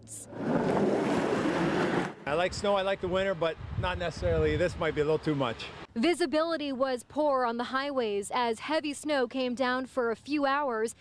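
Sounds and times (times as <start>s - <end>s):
snowplow blade pushing snow: 0.3s - 2.2s.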